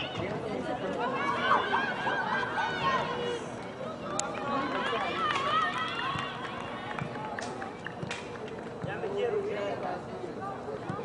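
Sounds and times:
players and onlookers shouting: 0:00.0 - 0:07.1.

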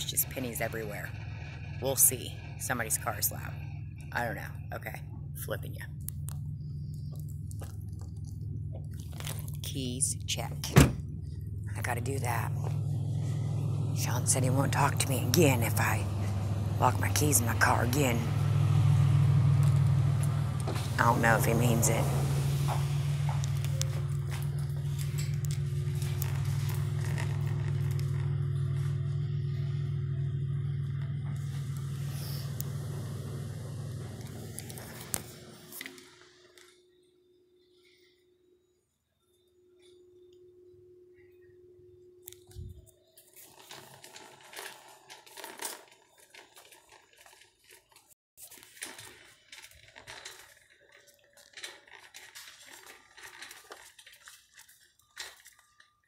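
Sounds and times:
loud low rumble: 0:00.0 - 0:35.6
rustling fabric and packaging: 0:06.8 - 0:09.7, 0:22.4 - 0:28.8, 0:42.4 - 0:56.0.

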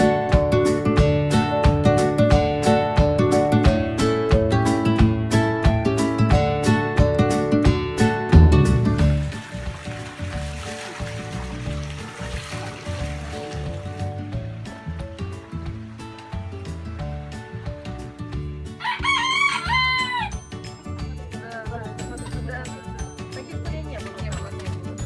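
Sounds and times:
plucked guitar music: 0:00.0 - 0:10.3, 0:12.8 - 0:25.0
rooster crowing: 0:18.8 - 0:20.4.

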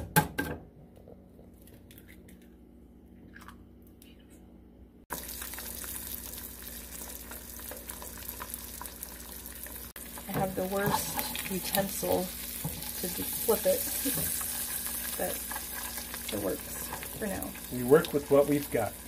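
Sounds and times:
egg sizzling in butter: 0:05.1 - 0:19.0.

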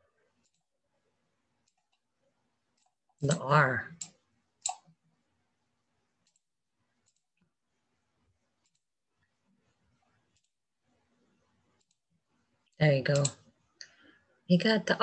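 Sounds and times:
computer mouse clicks: 0:00.4 - 0:00.7, 0:01.6 - 0:02.0, 0:02.7 - 0:05.0, 0:06.2 - 0:07.4, 0:08.6 - 0:08.9, 0:10.3 - 0:10.6, 0:11.7 - 0:12.0, 0:13.1 - 0:14.0.

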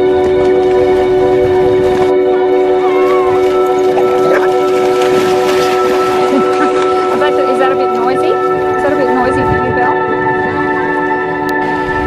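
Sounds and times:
music of long held chords: 0:00.0 - 0:12.0.

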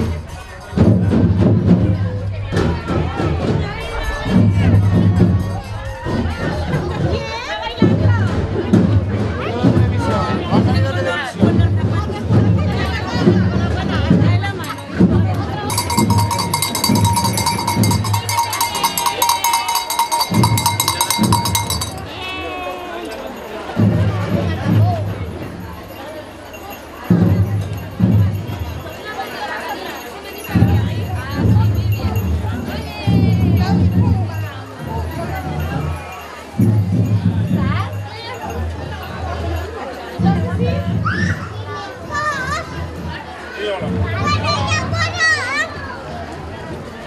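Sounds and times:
crowd chatter: 0:00.0 - 0:47.0
street voices: 0:00.0 - 0:47.0
metal bell ringing rapidly: 0:14.6 - 0:22.5, 0:25.9 - 0:39.8.

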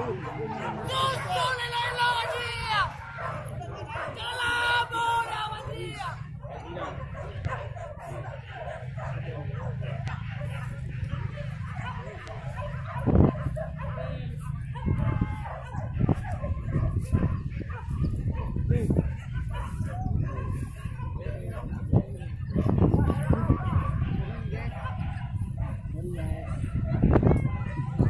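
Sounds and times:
dogs barking: 0:00.0 - 0:28.0
voices: 0:00.0 - 0:28.0.

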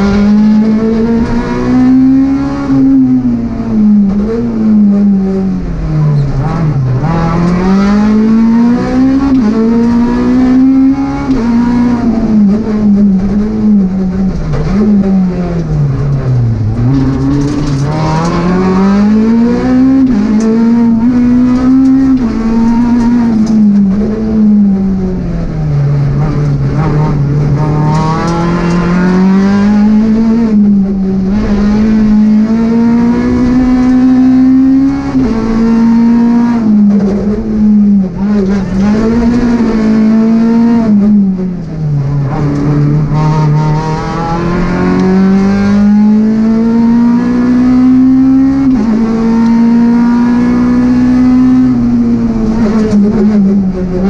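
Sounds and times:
rally car engine revving hard: 0:00.0 - 0:54.0.

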